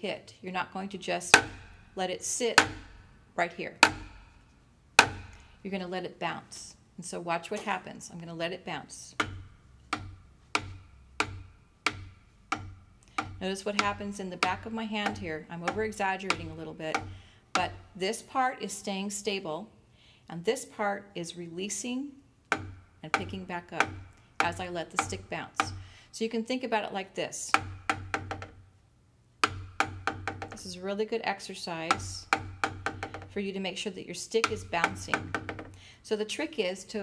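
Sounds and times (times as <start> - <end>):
wooden drumstick tapping: 1.3 - 1.9, 2.5 - 3.0, 3.8 - 5.5, 9.1 - 17.9, 22.5 - 25.8, 27.5 - 28.6, 29.4 - 30.8, 31.8 - 33.4, 34.4 - 35.8.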